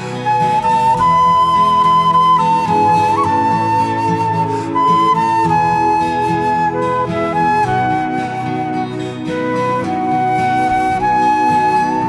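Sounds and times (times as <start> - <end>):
flute-like melody in held notes: 0.0 - 12.0
sustained chordal accompaniment: 0.0 - 12.0.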